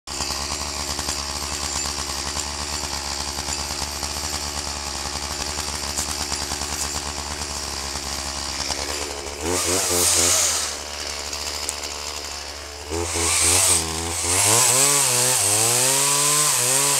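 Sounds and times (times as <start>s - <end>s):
chainsaw idling: 0.1s - 16.9s.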